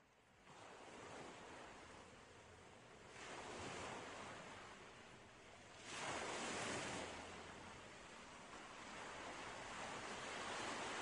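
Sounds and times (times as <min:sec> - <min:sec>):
waves washing in: 0:00.4 - 0:11.0.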